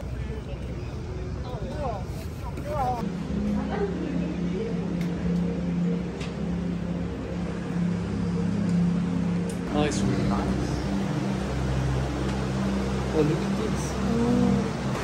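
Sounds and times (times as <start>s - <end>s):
low droning hum: 3.0s - 15.0s.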